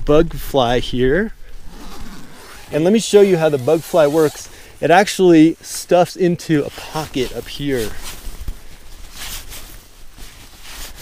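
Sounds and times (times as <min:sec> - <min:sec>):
nylon fabric rustling and scraping: 0:01.5 - 0:11.0.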